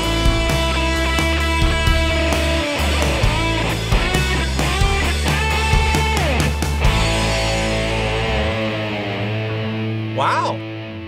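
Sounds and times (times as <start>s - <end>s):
drums: 0.0s - 10.6s
fuzzed electric guitar: 0.0s - 11.0s.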